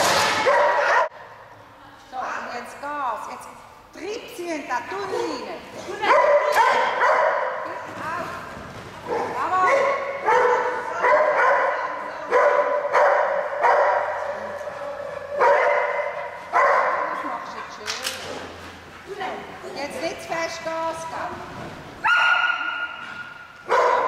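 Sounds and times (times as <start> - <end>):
dog barking in a large hall: 0.1 - 1.4, 6.0 - 7.8, 9.0 - 17.7, 22.0 - 24.0.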